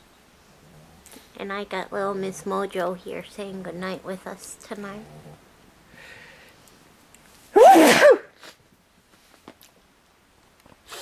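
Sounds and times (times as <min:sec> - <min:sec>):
man sneezing: 0:07.6 - 0:08.4.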